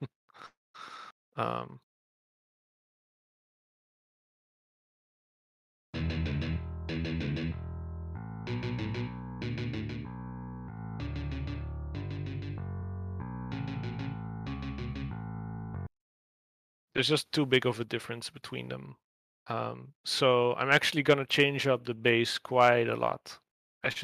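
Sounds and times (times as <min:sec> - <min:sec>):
distorted rhythm guitar: 0:06.0 - 0:07.6, 0:08.5 - 0:10.1
bass guitar: 0:06.0 - 0:15.9.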